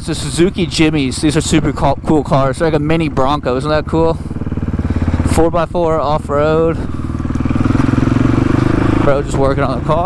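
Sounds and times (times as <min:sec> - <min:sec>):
dirt bike engine running steadily: 0:00.0 - 0:10.0.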